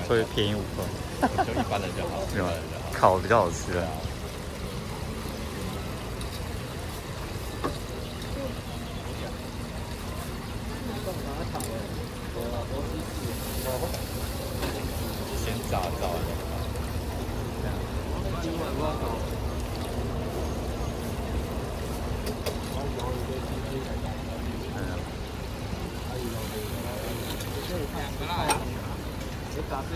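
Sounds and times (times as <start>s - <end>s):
food deep-frying in oil: 0.0s - 29.9s
street traffic rumble: 0.0s - 29.9s.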